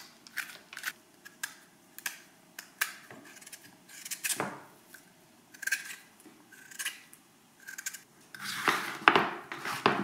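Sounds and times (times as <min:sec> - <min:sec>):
peeler scraping squash skin: 0:05.5 - 0:08.8.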